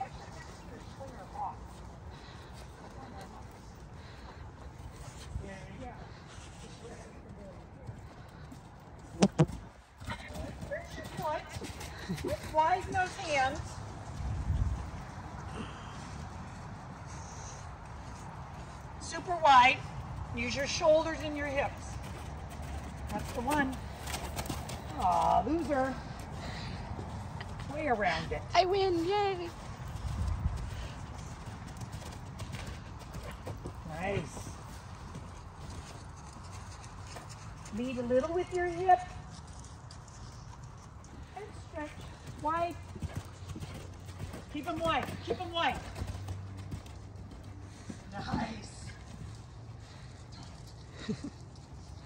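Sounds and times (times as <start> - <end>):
horse hoofbeats on sand: 0.0 - 17.2, 17.8 - 50.7.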